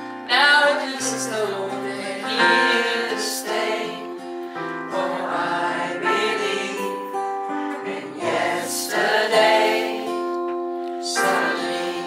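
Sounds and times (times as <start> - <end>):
acoustic guitar: 0.0 - 12.0
man singing a slow ballad: 0.2 - 3.2.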